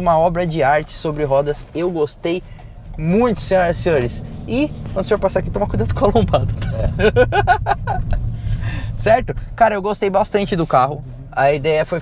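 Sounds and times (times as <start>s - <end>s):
low road rumble: 0.0s - 12.0s
men laughing: 6.6s - 8.8s.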